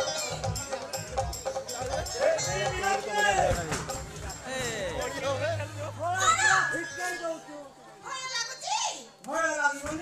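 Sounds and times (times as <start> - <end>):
crowd calling and shouting: 0.0 - 10.0.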